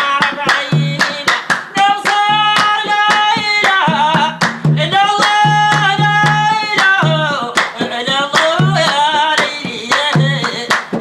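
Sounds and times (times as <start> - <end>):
hand clapping: 0.0 - 11.0
hand-struck skin drum: 0.0 - 11.0
man singing: 0.0 - 11.0.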